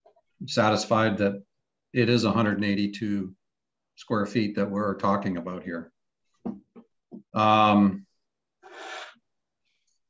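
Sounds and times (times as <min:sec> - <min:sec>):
breath drawn near microphone: 0:08.6 - 0:10.0.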